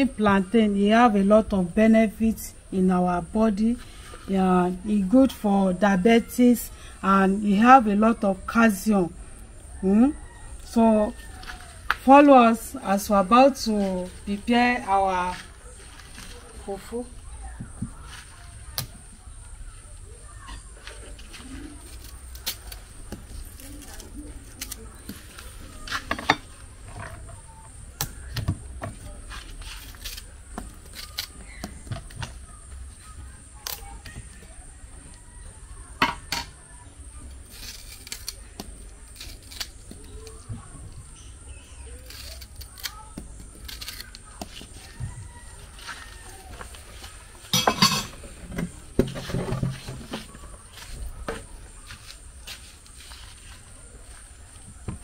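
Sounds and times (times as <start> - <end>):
knife scraping plantain peel: 20.4 - 34.4, 37.3 - 40.4, 41.1 - 54.2.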